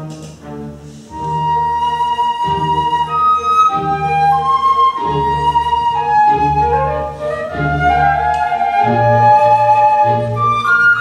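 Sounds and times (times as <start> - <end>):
string orchestra: 0.0 - 11.0
flutes playing melody: 0.9 - 11.0.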